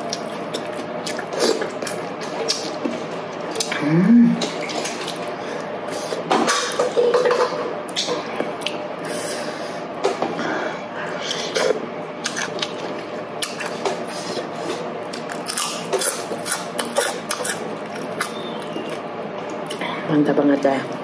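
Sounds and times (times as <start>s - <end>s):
chewing and lip smacking: 0.0s - 3.7s, 7.9s - 8.8s, 11.3s - 19.8s.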